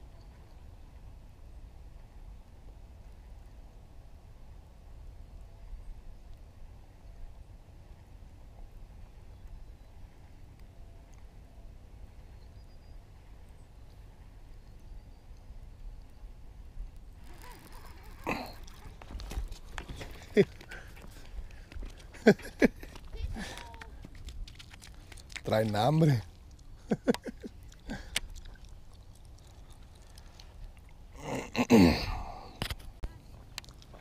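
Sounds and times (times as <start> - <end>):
fishing rod and reel handling: 17.2 - 22.2.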